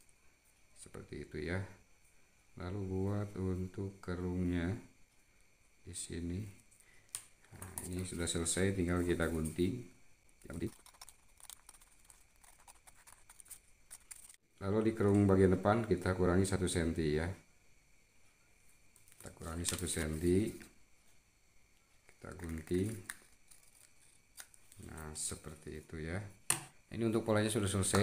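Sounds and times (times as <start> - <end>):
scissors snipping paper: 10.5 - 14.4.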